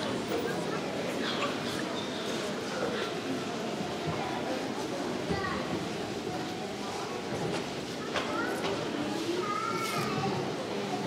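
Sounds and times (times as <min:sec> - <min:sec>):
murmur of voices: 0:00.0 - 0:11.0
child's voice: 0:08.1 - 0:10.5.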